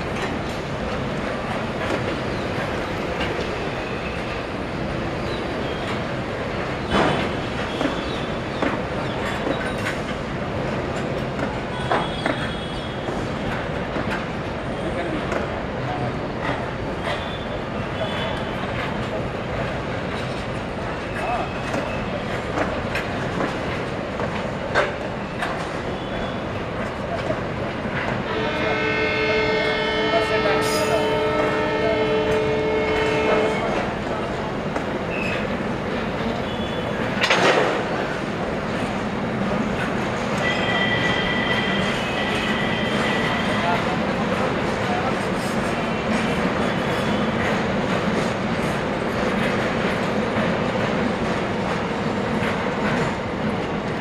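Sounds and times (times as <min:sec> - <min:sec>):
train wheels on rail: 0:00.0 - 0:54.0
train horn: 0:28.2 - 0:33.9, 0:40.4 - 0:43.8.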